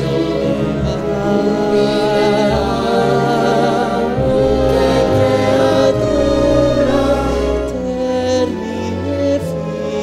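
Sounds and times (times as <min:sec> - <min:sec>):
choir singing long held notes: 0:00.0 - 0:10.0
low musical accompaniment: 0:00.0 - 0:10.0.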